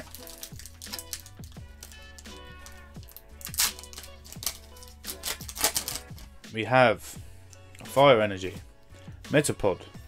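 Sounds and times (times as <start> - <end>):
foil wrapper crinkling and tearing: 0.0 - 6.3
soft background music: 0.0 - 10.0.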